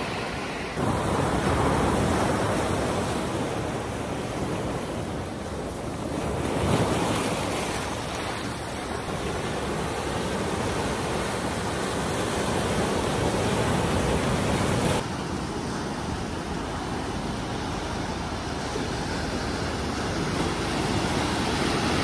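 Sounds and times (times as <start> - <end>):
surf washing on rocky shore: 0.0 - 22.0.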